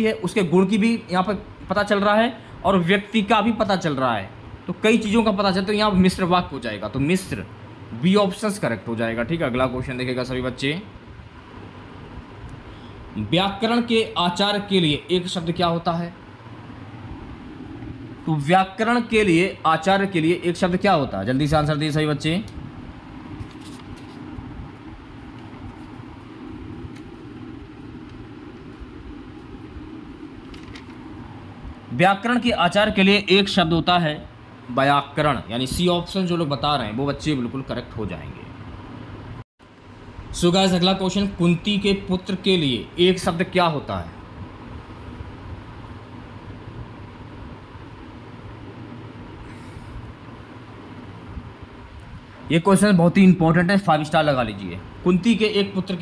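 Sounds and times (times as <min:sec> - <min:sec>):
faint hum and hiss: 0:00.0 - 0:56.0
low background rumble: 0:00.0 - 0:56.0.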